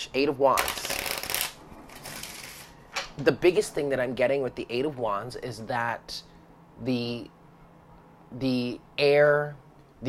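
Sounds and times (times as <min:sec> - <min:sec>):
cards being shuffled: 0:00.6 - 0:03.1.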